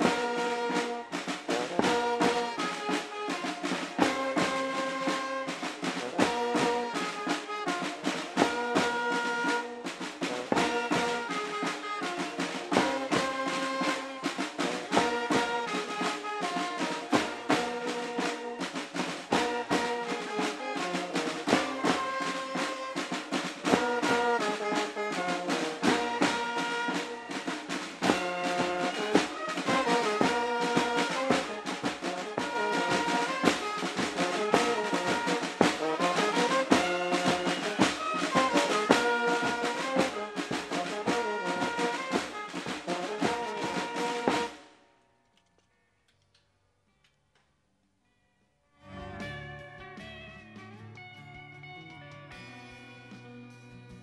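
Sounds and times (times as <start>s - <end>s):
marching band playing: 0.0s - 44.8s.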